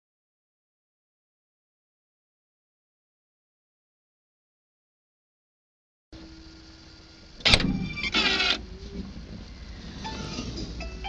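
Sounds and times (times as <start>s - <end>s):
low steady hum: 6.2s - 11.0s
rasping creak: 7.4s - 10.7s.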